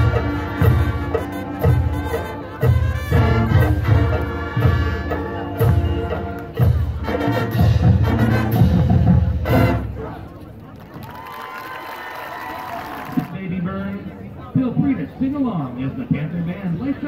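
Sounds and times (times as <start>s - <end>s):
marching band brass and drums: 0.0s - 10.6s.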